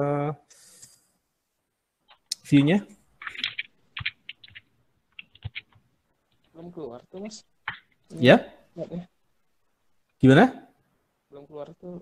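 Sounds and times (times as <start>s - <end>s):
computer keys clicking: 3.2s - 5.8s.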